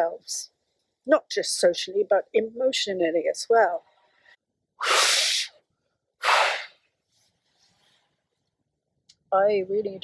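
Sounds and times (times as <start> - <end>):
woman blowing into a twig: 4.8 - 5.6.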